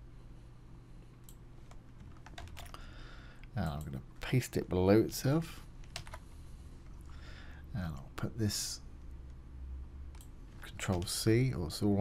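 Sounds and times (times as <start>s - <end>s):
keyboard keystrokes: 1.3s - 2.8s.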